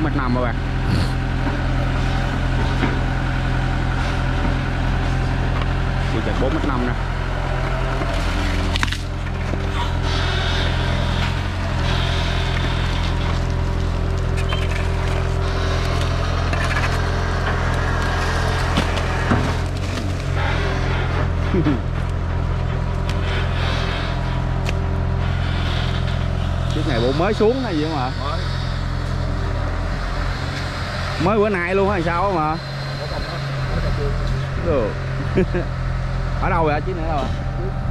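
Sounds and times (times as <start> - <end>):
excavator diesel engine running: 0.0 - 37.9
sharp cracks and knocks: 8.0 - 9.6, 12.5 - 20.4.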